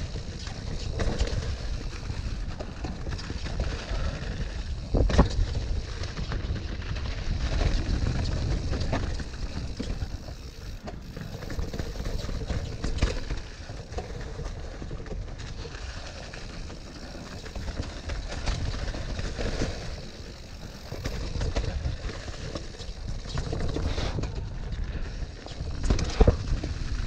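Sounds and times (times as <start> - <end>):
bike rattling over bumps: 0.0 - 27.0.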